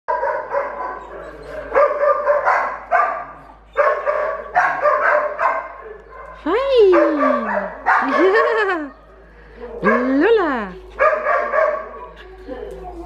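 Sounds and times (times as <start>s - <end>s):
dog barking high drawn-out barks: 0.1s - 1.0s, 1.7s - 8.5s, 11.0s - 12.2s.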